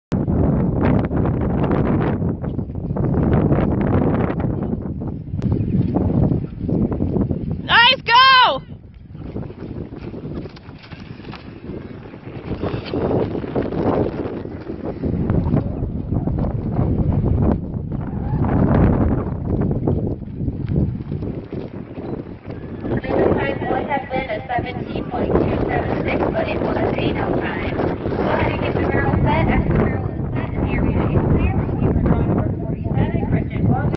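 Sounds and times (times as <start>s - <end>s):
wind buffeting microphone: 0.1s - 33.9s
people's voices: 7.7s - 8.6s, 22.9s - 33.9s
horse galloping on dirt: 8.8s - 32.4s.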